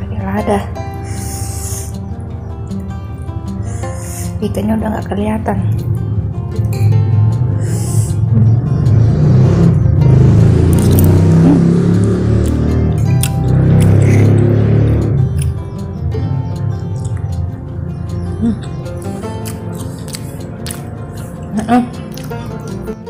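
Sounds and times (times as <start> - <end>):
background music with held tones: 0.0 - 23.0
loud low rumble: 5.5 - 18.9.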